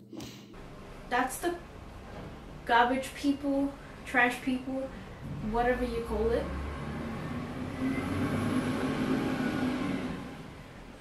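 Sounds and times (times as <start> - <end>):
garbage truck engine drone: 0.6 - 11.0.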